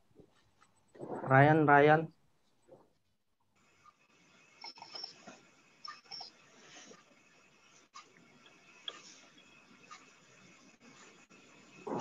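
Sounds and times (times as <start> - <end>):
open microphone background noise: 0.0 - 3.1.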